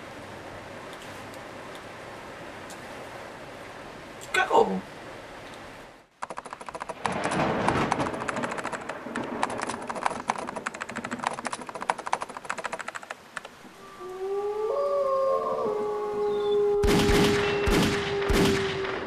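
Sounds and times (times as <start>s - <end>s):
rapid irregular clicking: 6.2s - 13.6s.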